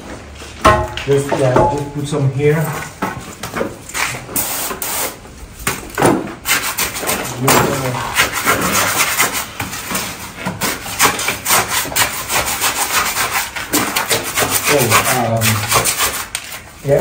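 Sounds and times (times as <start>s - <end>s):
wood scraping and rubbing: 6.4s - 17.0s.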